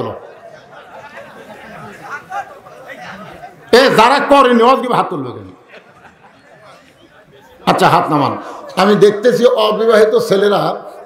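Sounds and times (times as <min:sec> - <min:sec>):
murmur of people talking: 0:00.0 - 0:11.0
louder voice: 0:01.9 - 0:05.5.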